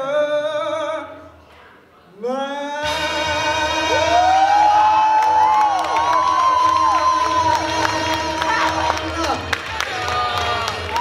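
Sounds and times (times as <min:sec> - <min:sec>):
man singing long note: 0:02.7 - 0:09.5
audience cheering and whooping: 0:03.5 - 0:11.0.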